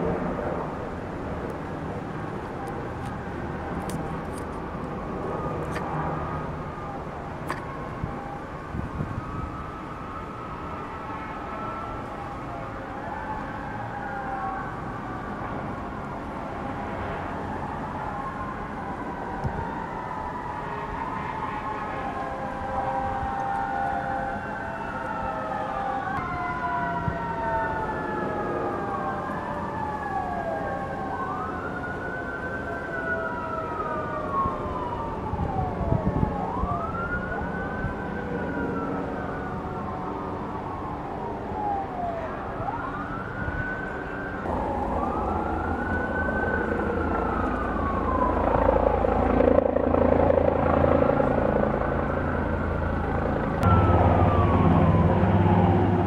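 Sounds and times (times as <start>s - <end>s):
sirens wailing: 0.0s - 56.0s
low rumbling: 51.5s - 56.0s.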